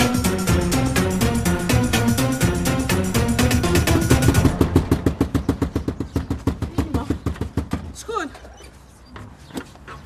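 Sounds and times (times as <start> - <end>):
music melody: 0.0 - 5.2
fast percussive beat: 0.0 - 6.8.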